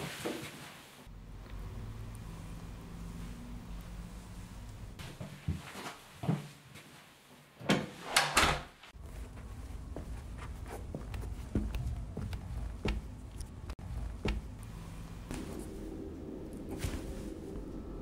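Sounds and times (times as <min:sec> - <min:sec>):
low steady rumble: 0:01.1 - 0:05.0, 0:09.0 - 0:18.0
door shutting: 0:07.6 - 0:08.8.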